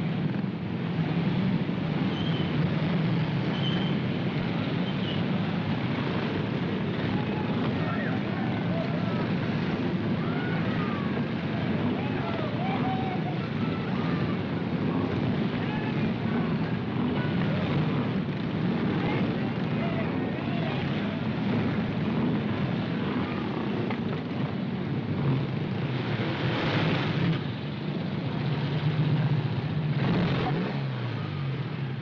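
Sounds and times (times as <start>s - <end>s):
motorcycle engine humming: 0.0s - 32.0s
motorcycle engines revving: 0.0s - 32.0s.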